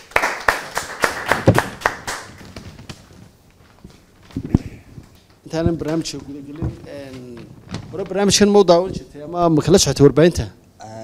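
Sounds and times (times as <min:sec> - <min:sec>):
audience clapping: 0:00.0 - 0:03.2.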